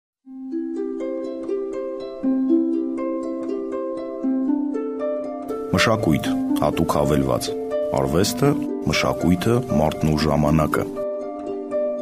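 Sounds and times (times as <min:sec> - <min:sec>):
picked arpeggio music: 0:00.3 - 0:12.0.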